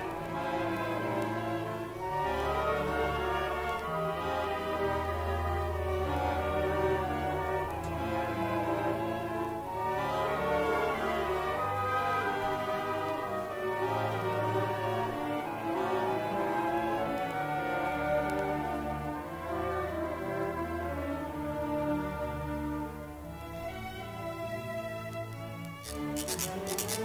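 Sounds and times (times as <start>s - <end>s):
orchestra playing classical music: 0.0s - 27.0s.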